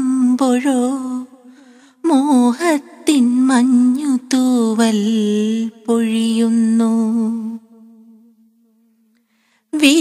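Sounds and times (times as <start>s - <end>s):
woman singing with wavering pitch: 0.0s - 9.0s, 9.7s - 10.0s.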